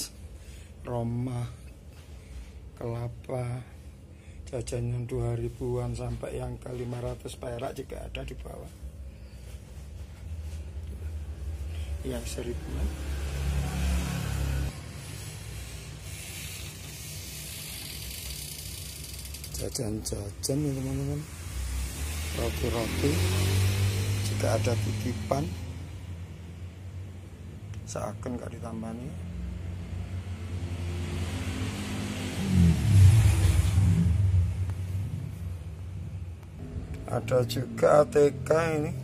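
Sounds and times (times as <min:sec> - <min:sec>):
motor vehicle passing by: 0:09.3 - 0:16.3, 0:20.1 - 0:27.2, 0:29.1 - 0:39.0
even hiss: 0:13.4 - 0:25.7
low hum: 0:32.7 - 0:38.5.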